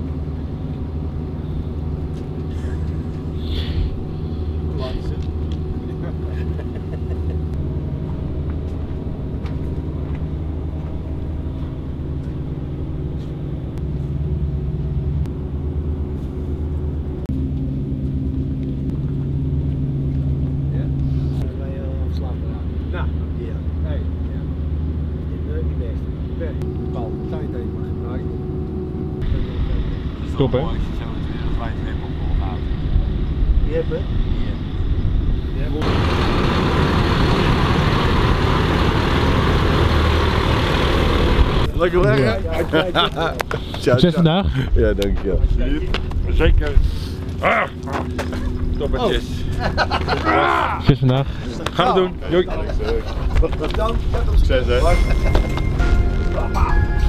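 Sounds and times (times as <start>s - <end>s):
large vehicle engine humming: 0.0s - 44.7s, 45.9s - 57.0s
voices: 4.6s - 7.6s, 35.5s - 57.0s
truck driving past: 35.7s - 42.0s.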